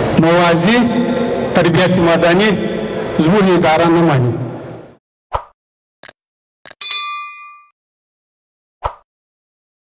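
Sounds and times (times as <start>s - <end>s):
notification bell ding: 6.8s - 7.8s.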